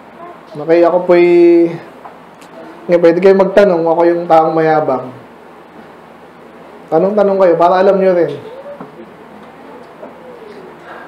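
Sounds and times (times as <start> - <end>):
distant bird cooing: 8.3 - 11.0.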